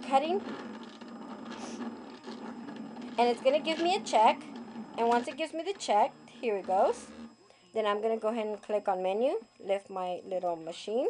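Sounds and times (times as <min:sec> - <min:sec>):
small motor whirring: 0:00.1 - 0:07.6.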